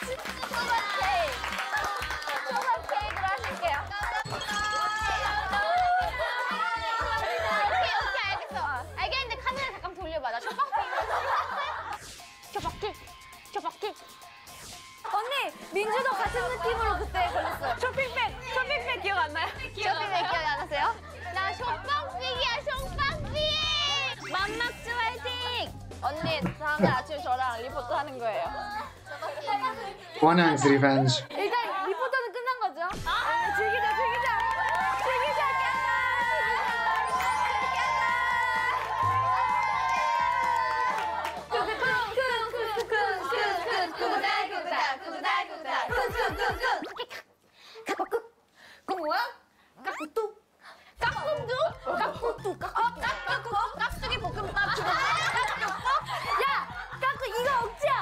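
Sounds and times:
women talking over each other: 0:02.6 - 0:11.0
women laughing: 0:04.9 - 0:08.8, 0:10.4 - 0:12.0, 0:26.1 - 0:27.2, 0:31.2 - 0:32.3, 0:51.1 - 0:57.2.

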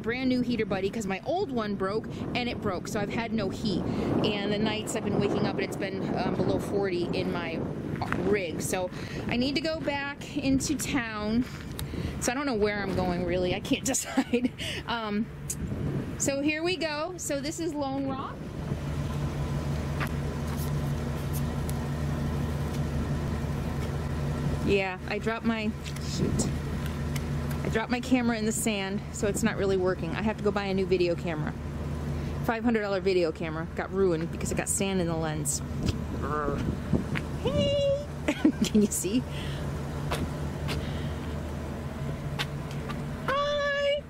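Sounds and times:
vehicle engine droning: 0:00.0 - 0:44.0.

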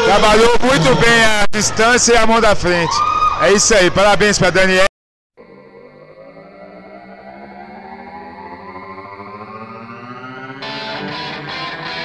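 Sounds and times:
held chord rising in pitch: 0:05.4 - 0:12.0
guitar-led music with regular beat: 0:10.6 - 0:12.0.

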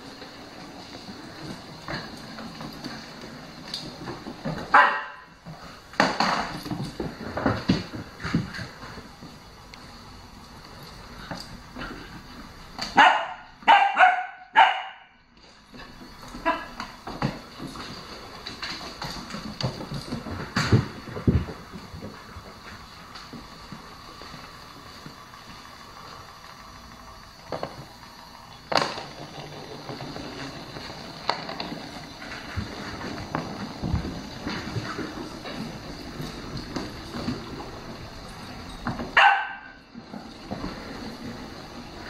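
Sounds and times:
puppy barking: 0:04.7 - 0:05.2, 0:13.0 - 0:15.1, 0:39.2 - 0:39.8.

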